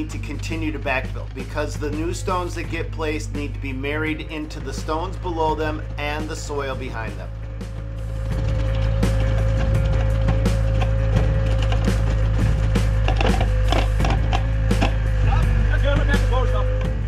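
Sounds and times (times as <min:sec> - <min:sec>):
soil crackling and knocking: 0:00.0 - 0:15.4
excavator engine running: 0:00.0 - 0:17.0
hydraulic whine: 0:00.0 - 0:17.0.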